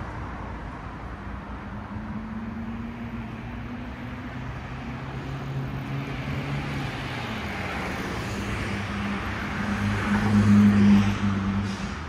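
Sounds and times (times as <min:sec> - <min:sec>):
car passing by: 0:01.7 - 0:12.0.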